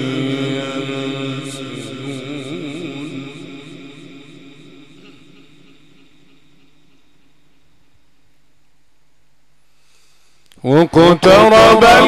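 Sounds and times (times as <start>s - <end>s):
echo of reciter's wavering note: 0.0s - 7.1s, 10.6s - 12.0s
steady low hum: 0.0s - 12.0s.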